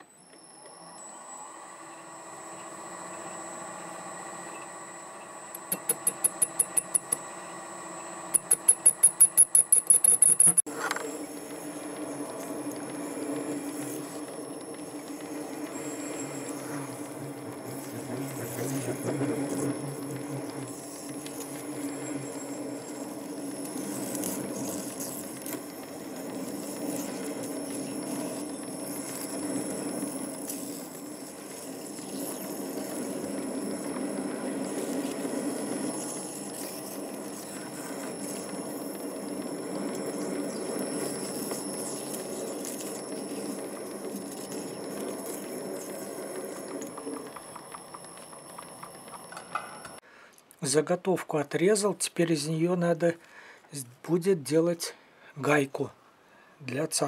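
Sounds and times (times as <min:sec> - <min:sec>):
lathe machine hum: 0:00.0 - 0:50.0.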